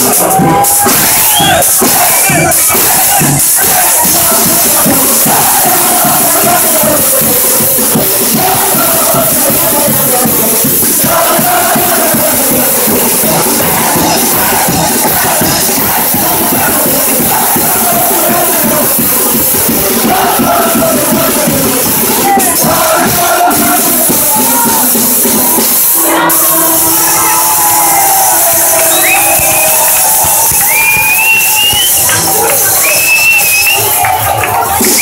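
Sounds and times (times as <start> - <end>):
crowd cheering: 0.0 - 35.0
snare drum beat: 0.0 - 35.0.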